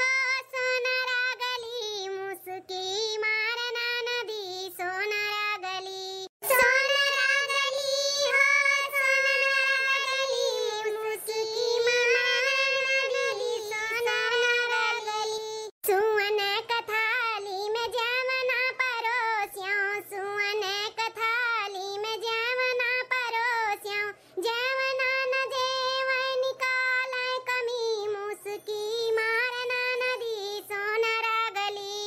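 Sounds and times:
high-pitched cartoon voice singing: 4.5s - 19.8s.

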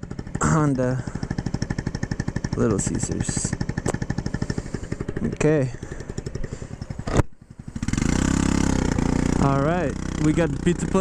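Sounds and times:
scooter engine: 0.0s - 11.0s.

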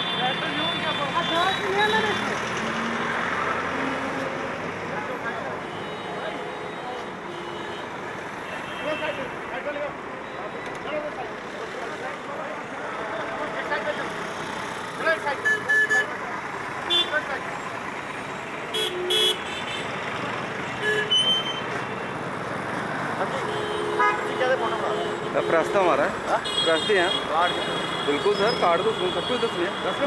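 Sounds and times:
passing vehicles: 0.0s - 30.0s
vehicle horn toots: 23.4s - 29.6s.

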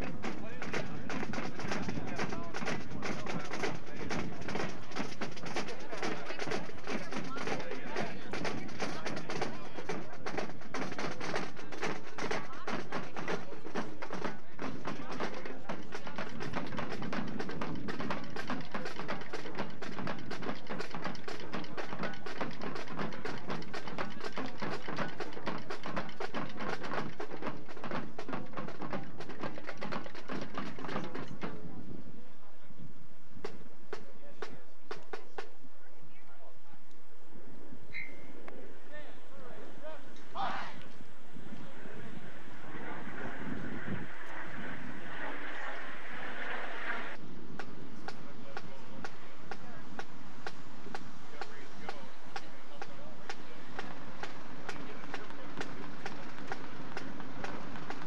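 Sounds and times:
marching band playing: 0.0s - 32.0s, 47.5s - 58.0s
people talking: 0.0s - 33.0s, 34.0s - 36.9s, 38.4s - 47.2s, 47.9s - 50.1s, 51.2s - 58.0s.

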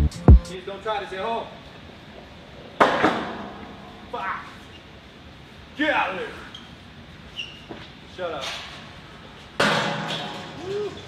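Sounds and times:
metal ladder clanking: 9.6s - 10.6s.

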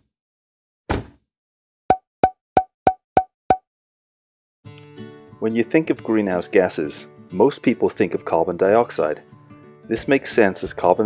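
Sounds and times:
thump: 0.9s - 1.2s
strummed guitar music: 4.7s - 6.3s.

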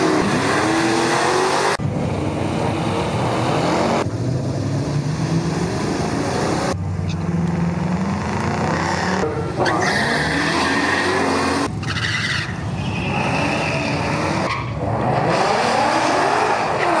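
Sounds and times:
racing car engines revving: 0.0s - 17.0s.

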